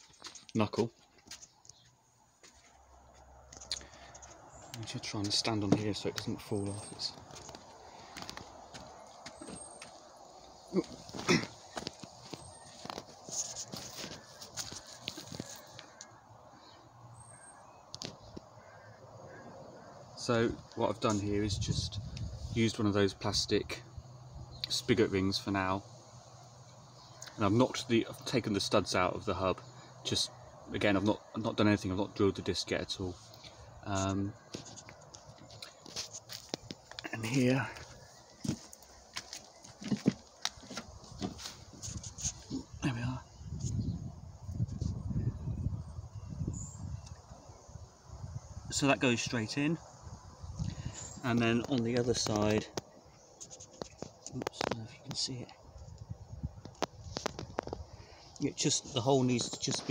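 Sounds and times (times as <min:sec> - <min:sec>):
footsteps on wooden decking: 0:00.0 - 0:16.0, 0:34.3 - 0:42.8.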